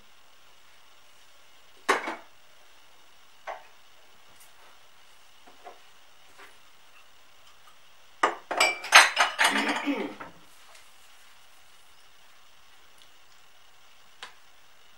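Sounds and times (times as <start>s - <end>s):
crockery and utensils clinking: 8.2s - 10.3s.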